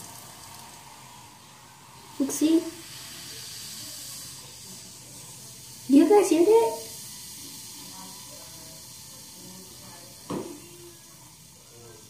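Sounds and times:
bubbles fizzing: 0:00.0 - 0:11.1.

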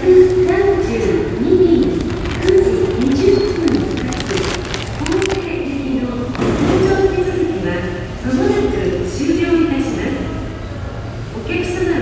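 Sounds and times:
woman announcing over loudspeakers: 0:00.0 - 0:10.5, 0:11.3 - 0:12.0.

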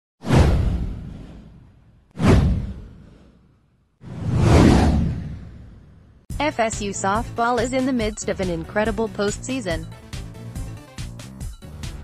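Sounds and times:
deep falling whoosh: 0:00.2 - 0:06.2.

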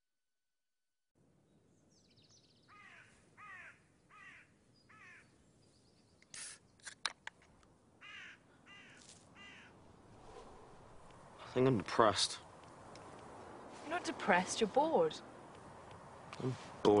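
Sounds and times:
crow cawing: 0:02.7 - 0:05.3, 0:08.0 - 0:09.8.

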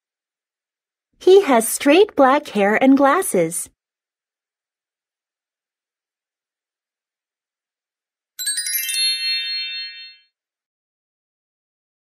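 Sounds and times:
electronic chime: 0:08.4 - 0:10.3.

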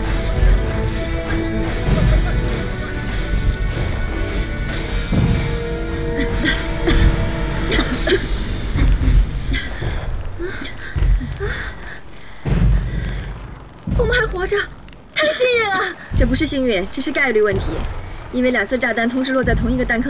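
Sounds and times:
bomb explosions: 0:00.0 - 0:15.2, 0:16.0 - 0:20.0
dramatic music: 0:00.0 - 0:15.2
woman's voice: 0:13.9 - 0:20.0.

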